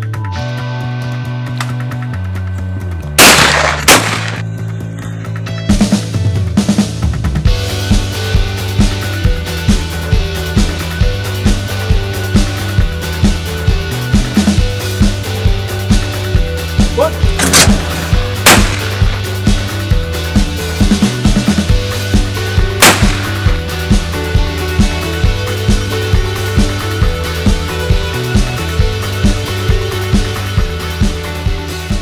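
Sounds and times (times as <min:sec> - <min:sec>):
rock music with steady beat: 0:00.0 - 0:32.0
clay target breaking: 0:03.2 - 0:04.4, 0:18.5 - 0:19.2
shotgun shots: 0:03.2 - 0:04.4, 0:17.4 - 0:19.5, 0:22.8 - 0:23.6.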